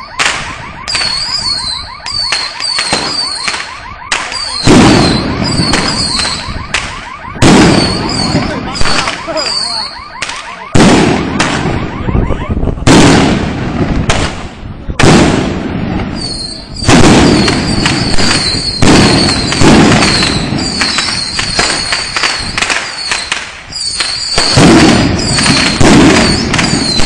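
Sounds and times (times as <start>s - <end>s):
firecrackers banging: 0.0s - 27.0s.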